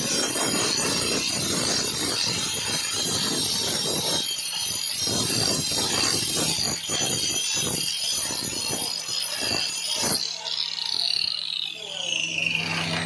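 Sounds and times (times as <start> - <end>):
angle grinder grinding stone: 0.0 - 13.0
grinder disc spinning down: 0.0 - 13.0.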